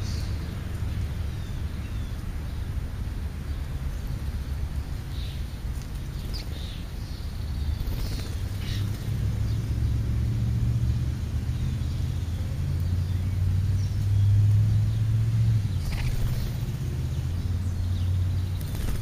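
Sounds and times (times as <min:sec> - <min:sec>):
vehicle engine rumble: 0:00.0 - 0:19.0.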